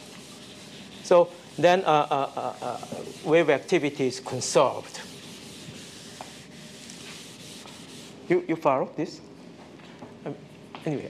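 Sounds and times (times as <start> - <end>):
chalk scratching on blackboard: 0.0 - 8.2
chalk tap: 2.6 - 3.3, 5.1 - 8.0.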